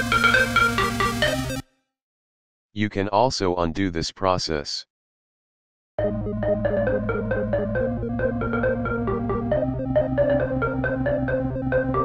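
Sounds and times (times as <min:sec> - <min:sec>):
electronic music with synth melody: 0:00.0 - 0:01.6, 0:06.0 - 0:12.0.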